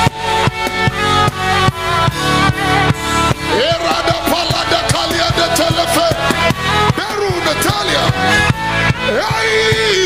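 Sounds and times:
worship band held chords: 0.2s - 10.0s
steady drum beat: 2.5s - 8.4s.

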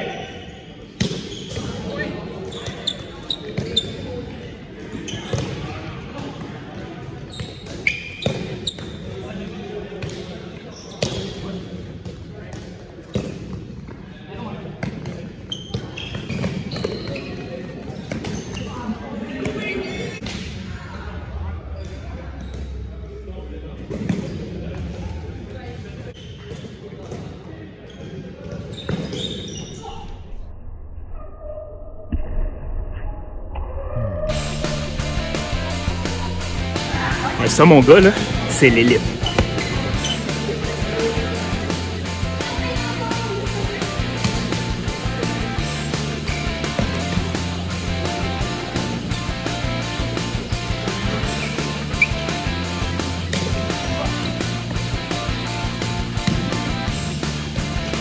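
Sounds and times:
players calling out: 34.3s - 58.0s.

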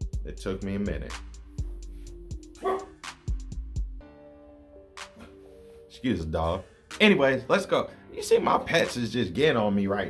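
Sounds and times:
instrumental music with steady beat: 0.0s - 10.0s
dog barking: 2.6s - 3.0s.

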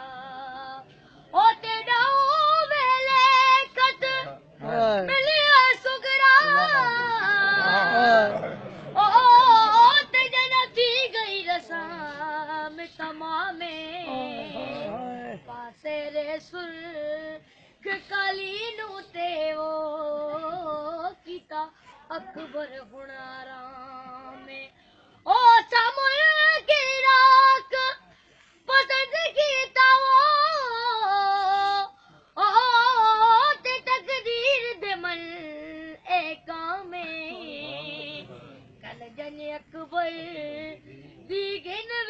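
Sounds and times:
boy singing a lament unaccompanied: 0.0s - 42.0s.

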